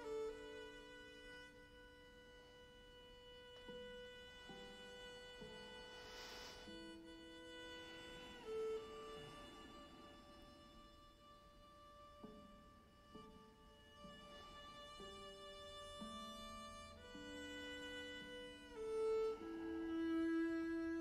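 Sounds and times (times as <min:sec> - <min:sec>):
slow quiet instrumental music: 0:00.0 - 0:21.0.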